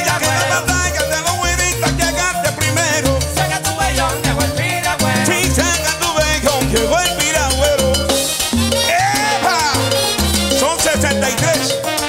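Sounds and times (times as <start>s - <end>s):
lead singer: 0.0s - 8.2s
congas: 0.0s - 12.0s
live salsa band playing: 0.0s - 12.0s.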